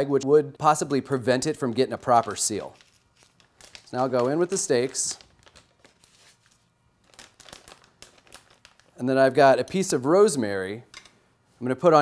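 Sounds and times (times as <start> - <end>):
plastic bag crinkling: 1.9 - 9.1.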